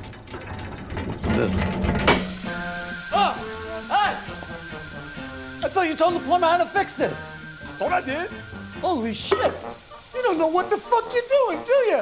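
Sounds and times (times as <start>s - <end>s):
water splashing in sink: 0.6s - 12.0s
water spraying from faucet: 2.0s - 12.0s.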